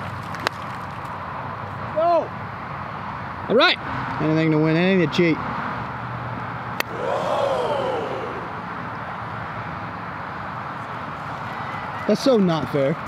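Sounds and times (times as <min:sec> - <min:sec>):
distant traffic: 0:05.4 - 0:13.0.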